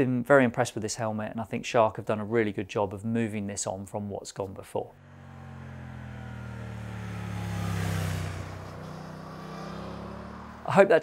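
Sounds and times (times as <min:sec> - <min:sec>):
motorcycle passing by: 0:05.0 - 0:10.9.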